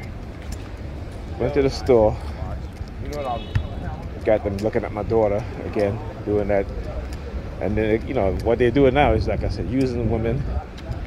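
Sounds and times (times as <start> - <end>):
low street rumble: 0.0 - 11.0
man's voice: 1.4 - 7.0, 7.6 - 11.0.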